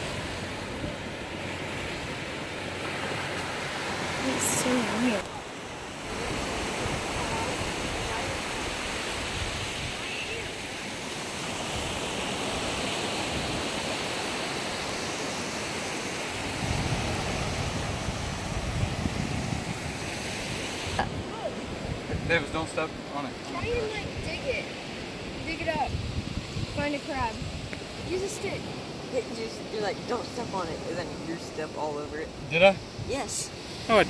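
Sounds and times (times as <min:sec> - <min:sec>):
wind buffeting microphone: 0:00.0 - 0:15.0, 0:16.3 - 0:33.9
ocean surf rushing: 0:00.0 - 0:34.0.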